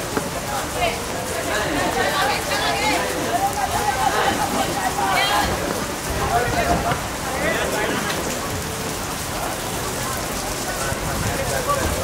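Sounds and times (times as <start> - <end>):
steady rain hiss: 0.0 - 12.0
players calling out: 0.1 - 8.3.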